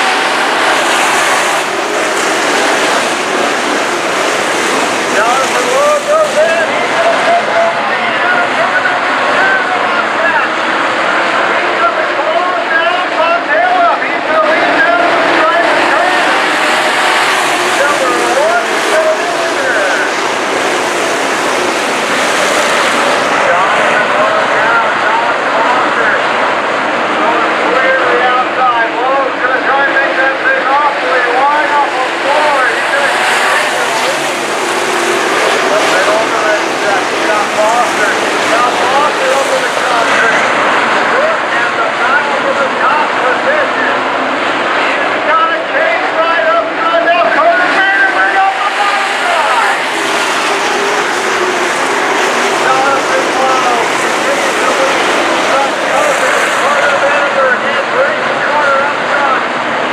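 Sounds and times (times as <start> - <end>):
race car engines at speed: 0.0 - 59.9.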